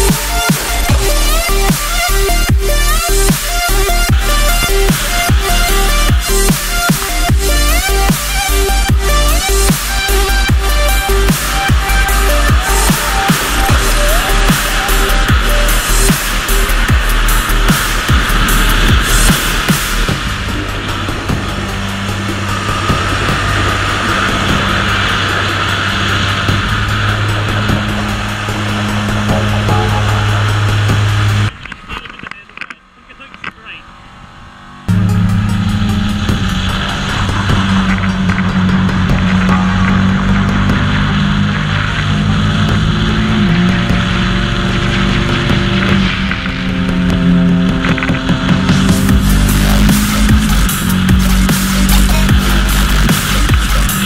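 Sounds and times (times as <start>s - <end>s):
motorcycle engine at high revs: 0.0s - 54.0s.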